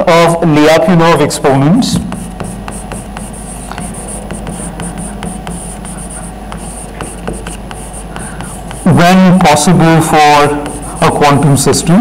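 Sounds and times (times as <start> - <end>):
steady low hum: 0.0 - 12.0
chalk writing on blackboard: 1.8 - 12.0.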